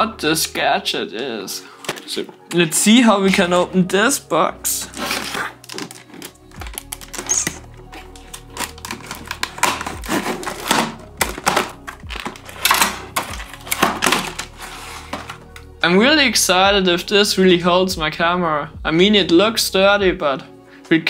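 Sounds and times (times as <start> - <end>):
plastic packaging crackling: 4.8 - 15.7.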